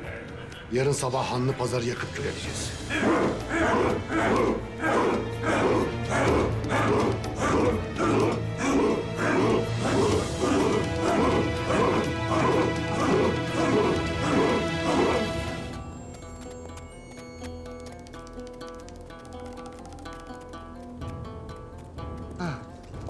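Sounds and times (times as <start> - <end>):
dramatic orchestral music: 0.0 - 16.4
men shouting rhythmic chant: 2.3 - 15.8.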